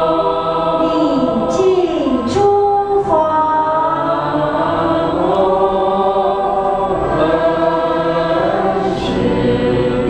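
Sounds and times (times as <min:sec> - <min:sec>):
choir singing slow chant: 0:00.0 - 0:10.0.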